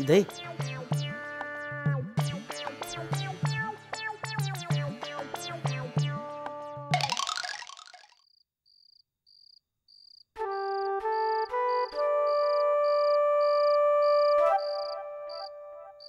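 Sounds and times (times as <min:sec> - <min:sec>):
cricket chirping: 0:08.2 - 0:15.5.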